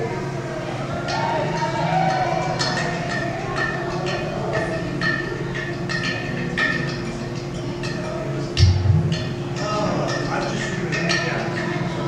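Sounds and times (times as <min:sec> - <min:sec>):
clay pot drum wavering tone: 0:01.0 - 0:12.0.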